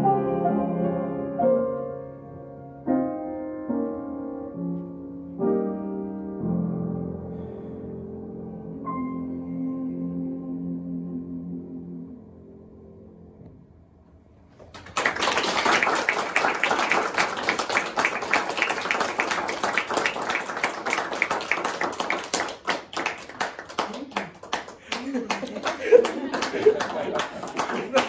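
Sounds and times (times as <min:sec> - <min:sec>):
piano chord: 0:00.0 - 0:14.3
audience applause: 0:14.5 - 0:28.0.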